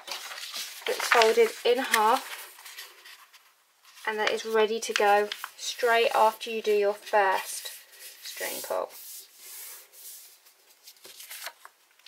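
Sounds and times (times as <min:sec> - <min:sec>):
paper crinkling: 0:00.0 - 0:06.3, 0:07.0 - 0:12.0
hand sliding over paper: 0:07.4 - 0:11.5.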